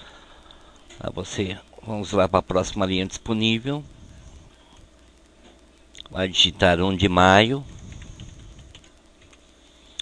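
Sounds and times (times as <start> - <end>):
computer keyboard typing: 7.6 - 9.4.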